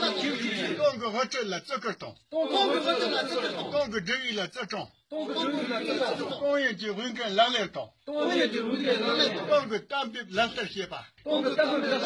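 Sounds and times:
men reciting in unison: 0.0s - 12.0s.

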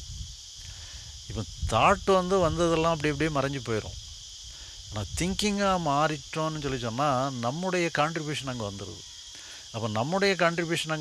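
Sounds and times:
high-pitched insect chorus: 0.0s - 11.0s.

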